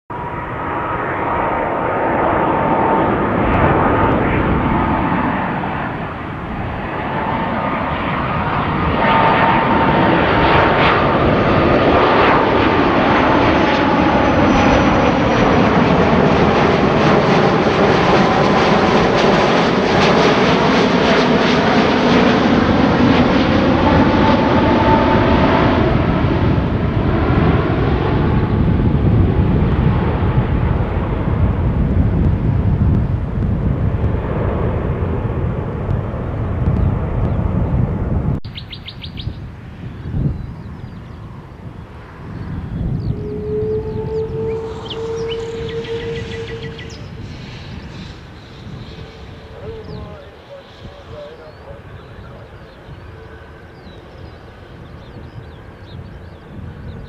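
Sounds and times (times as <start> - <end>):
jet airliner engines roaring: 0.1 - 57.0.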